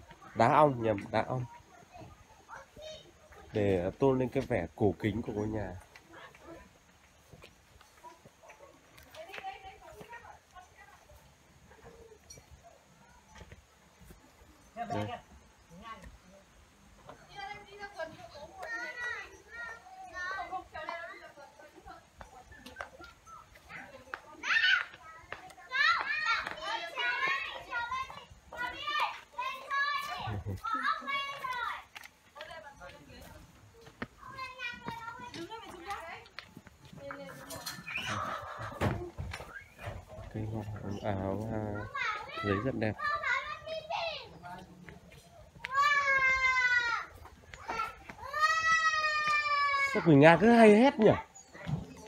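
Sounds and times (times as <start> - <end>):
children chattering and calling out: 0.0 - 52.0
animal calling: 37.6 - 40.1.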